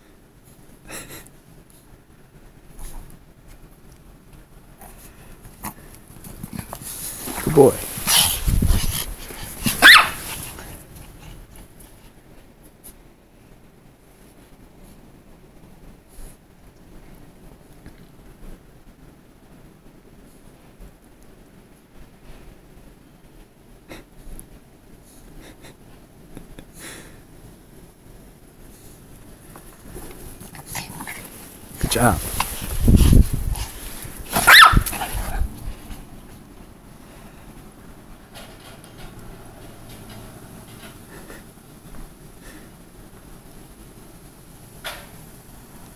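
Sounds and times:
rustling and rumble: 0:00.0 - 0:45.9
small dog yipping: 0:09.8 - 0:10.3, 0:34.4 - 0:35.1.

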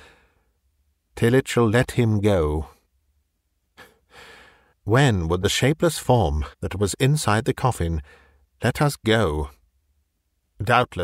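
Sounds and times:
soft in-breath: 0:00.0 - 0:00.6, 0:03.8 - 0:04.8, 0:08.0 - 0:08.5
man speaking: 0:01.2 - 0:02.8, 0:04.9 - 0:09.6, 0:10.6 - 0:11.0.

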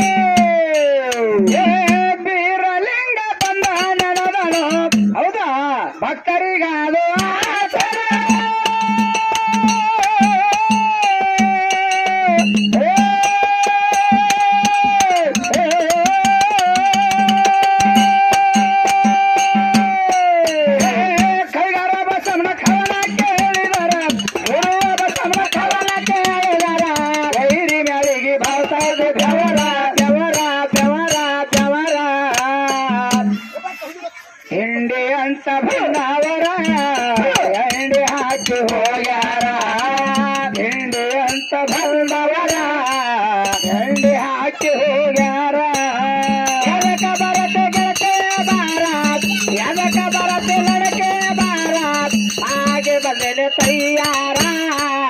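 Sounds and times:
hand cymbals clinking: 0:00.0 - 0:02.1, 0:03.4 - 0:05.2, 0:07.2 - 0:33.6, 0:35.7 - 0:55.0
drum strokes: 0:00.0 - 0:02.2, 0:03.4 - 0:05.2, 0:07.2 - 0:34.1, 0:35.7 - 0:55.0
man singing through microphone: 0:00.0 - 0:55.0.

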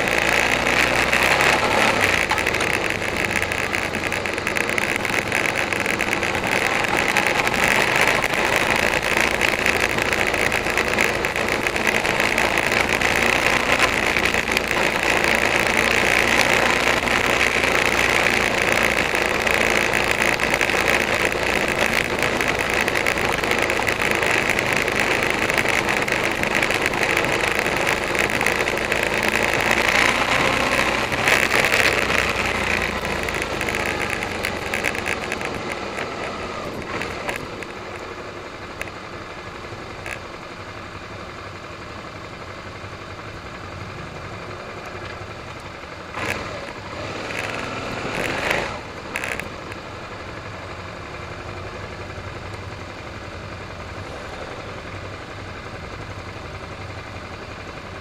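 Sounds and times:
motorcycle engine running: 0:00.0 - 0:58.0
road noise: 0:00.0 - 0:58.0.

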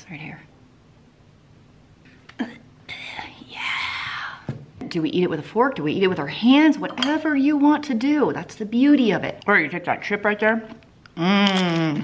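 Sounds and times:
person whispering: 0:02.3 - 0:04.4.

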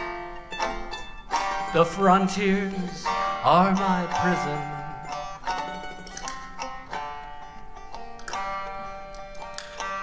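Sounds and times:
accordion chords: 0:00.0 - 0:10.0
banjo picking: 0:00.0 - 0:10.0
plucked string instrument: 0:00.0 - 0:10.0.

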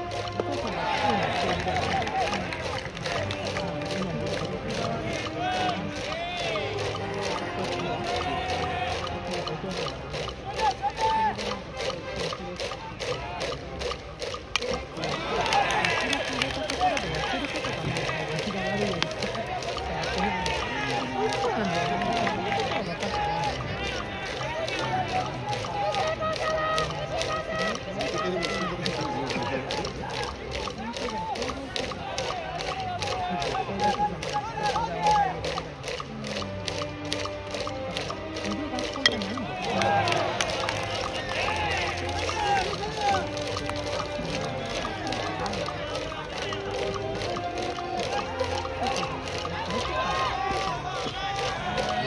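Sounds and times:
crowd chanting and calling: 0:00.0 - 0:52.0.

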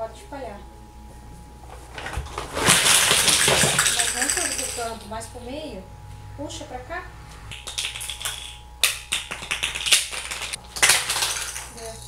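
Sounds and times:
plastic blocks clattering on tile: 0:02.8 - 0:04.8, 0:07.5 - 0:12.0.

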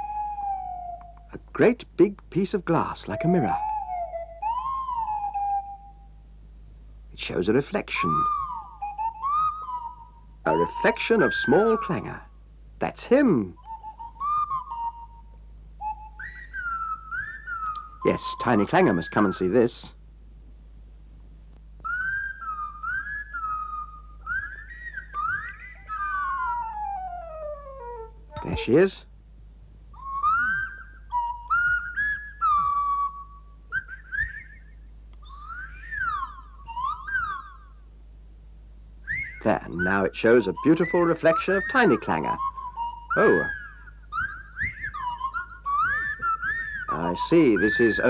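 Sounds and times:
slide-whistle voice calling: 0:00.0 - 0:01.7, 0:02.4 - 0:06.2, 0:07.2 - 0:20.0, 0:21.8 - 0:29.1, 0:29.9 - 0:37.9, 0:39.0 - 0:48.0.

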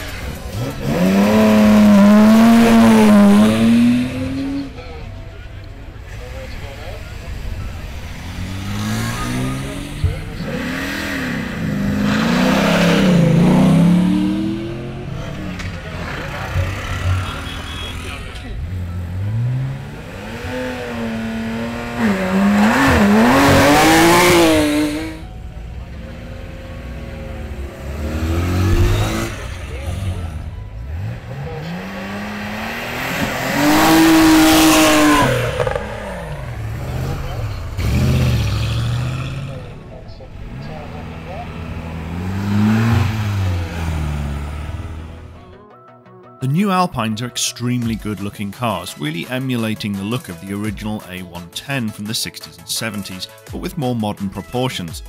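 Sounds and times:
sports car engine revving: 0:00.0 - 0:04.8, 0:06.1 - 0:45.4.

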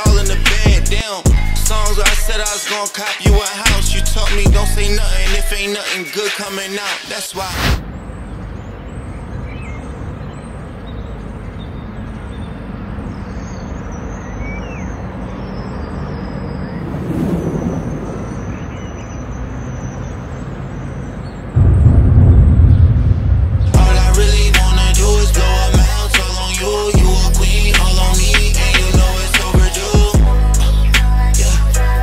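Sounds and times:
loud low rumble: 0:21.6 - 0:26.4.

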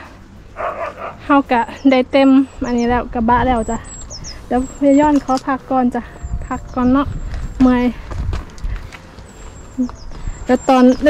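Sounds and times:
woman speaking: 0:01.2 - 0:08.0, 0:09.8 - 0:11.0.

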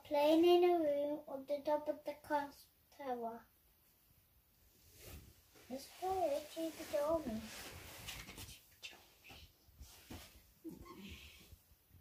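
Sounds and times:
faint soft rustles: 0:03.8 - 0:12.0.

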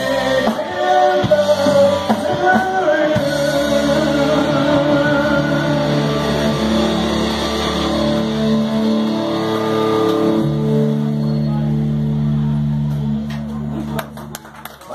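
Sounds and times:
live rock band playing loud: 0:00.0 - 0:14.4.

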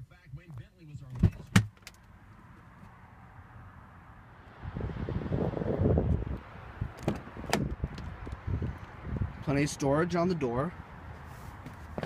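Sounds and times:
wind and handling rumble: 0:04.7 - 0:09.8
car door latch clicks: 0:07.0 - 0:07.7.

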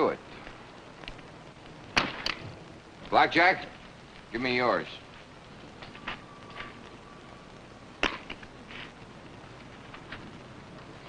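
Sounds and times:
film soundtrack hiss: 0:00.0 - 0:11.0.

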